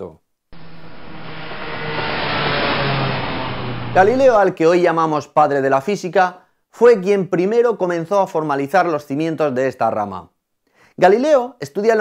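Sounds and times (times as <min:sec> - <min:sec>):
car driving past: 0:00.6 - 0:04.6.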